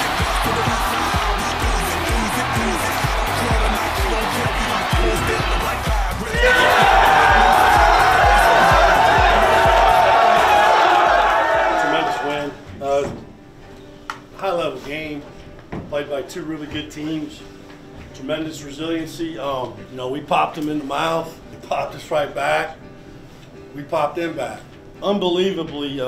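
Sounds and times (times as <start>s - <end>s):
music with steady beat: 0.0s - 11.9s
crowd cheering: 0.0s - 12.6s
people shouting and yelling: 0.0s - 12.6s.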